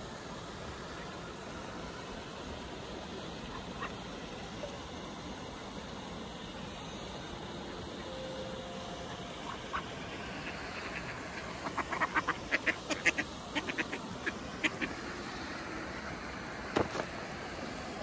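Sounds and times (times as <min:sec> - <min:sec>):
ducks quacking: 0:09.0 - 0:15.0.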